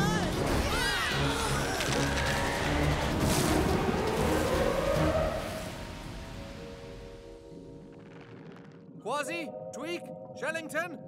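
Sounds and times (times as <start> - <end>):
dramatic orchestral music: 0.0 - 7.9
rushing rumble of churning water: 1.6 - 7.1.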